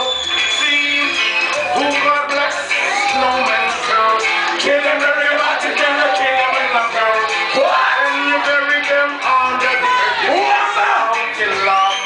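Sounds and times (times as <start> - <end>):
reggae music over sound system: 0.0 - 12.0.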